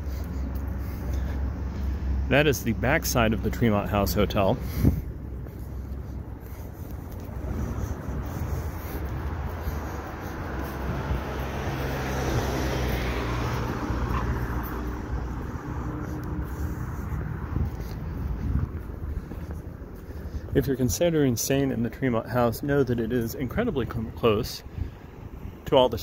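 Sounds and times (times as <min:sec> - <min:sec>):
steady low traffic rumble: 0:00.0 - 0:26.0
vehicle passing: 0:00.0 - 0:26.0.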